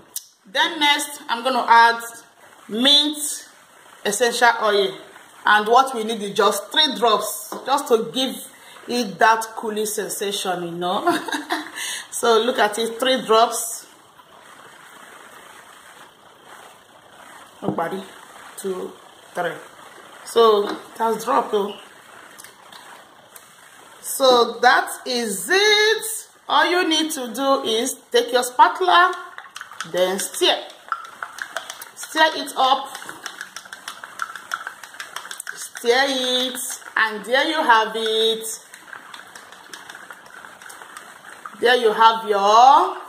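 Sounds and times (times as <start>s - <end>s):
room tone hiss: 0.0s - 43.0s
spatula scraping plastic cup: 29.0s - 41.9s.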